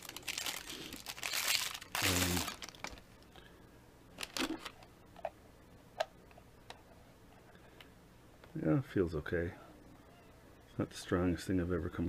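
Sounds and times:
plastic bag crinkling: 0.0 - 3.2, 4.2 - 4.8.

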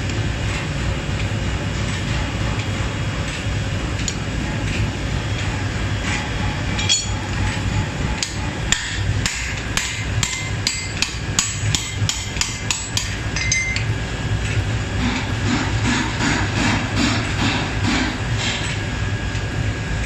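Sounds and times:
hammer striking metal on anvil: 6.8 - 7.2, 8.2 - 13.9.

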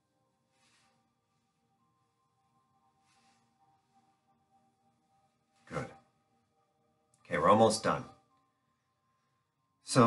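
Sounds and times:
faint steady tones: 0.0 - 10.0.

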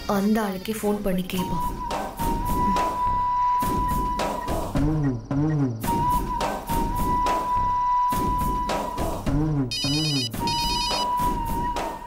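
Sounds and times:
mobile phone ringtone trilling: 9.7 - 11.2.

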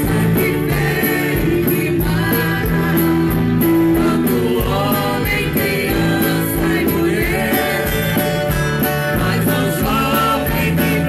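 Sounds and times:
live band and singer: 0.0 - 11.0.

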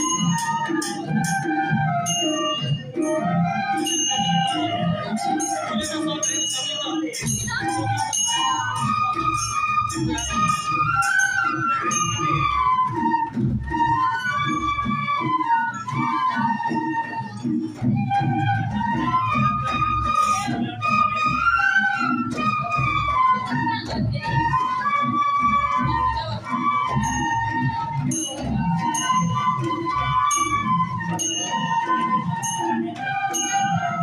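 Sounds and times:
bamboo flutes playing melody: 0.0 - 34.0.

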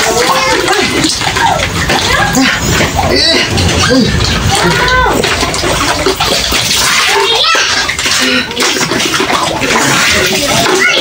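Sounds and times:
water splashing into plastic basin: 0.0 - 11.0.

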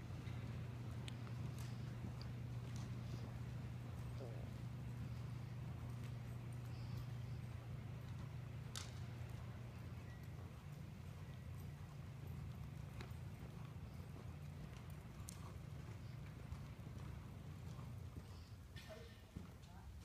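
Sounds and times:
horse hoofbeats on dirt: 0.0 - 20.0.

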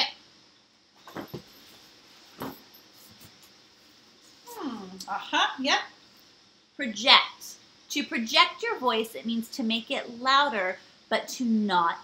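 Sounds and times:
knocks and rustles of papers: 1.0 - 1.6
woman humming: 4.4 - 5.2.

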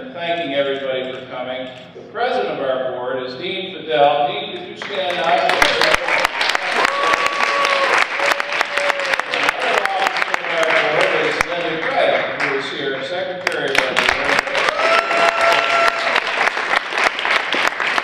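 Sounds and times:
audience applause: 5.1 - 12.6, 13.4 - 18.0.

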